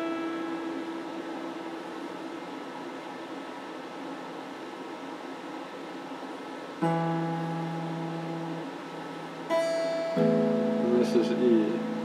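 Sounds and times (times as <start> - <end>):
clean electric guitar notes: 0.0 - 1.8, 6.8 - 12.0.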